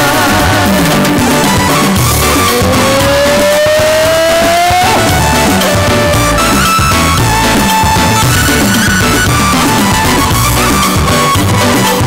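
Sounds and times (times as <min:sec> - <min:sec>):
loud band music: 0:00.0 - 0:12.0
long sliding lead note: 0:00.4 - 0:11.2.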